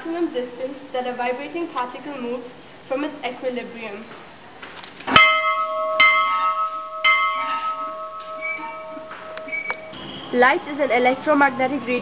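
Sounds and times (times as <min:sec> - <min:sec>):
large bell ringing: 0:05.2 - 0:10.2.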